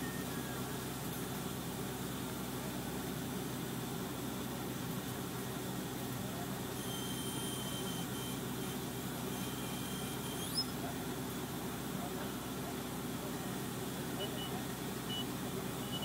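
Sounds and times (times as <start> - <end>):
crane engine running: 0.0 - 16.0
thin high squeal: 6.8 - 10.8.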